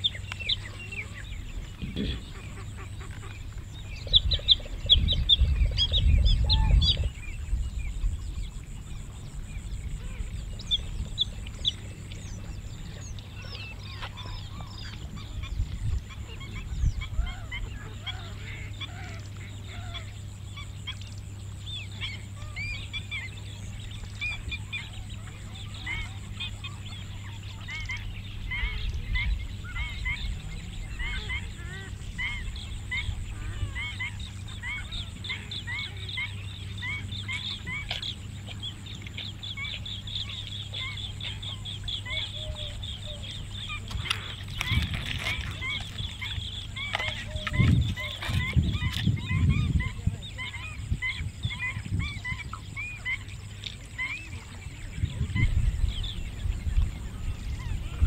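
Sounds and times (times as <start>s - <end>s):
birds chirping: 0.0s - 58.0s
steady low hum: 0.0s - 58.0s.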